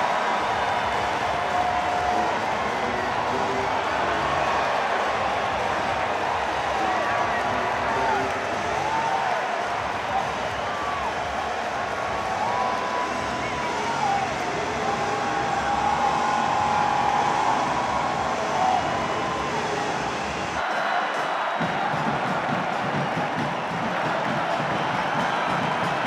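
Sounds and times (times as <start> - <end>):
stadium crowd cheering and singing: 0.0 - 26.0.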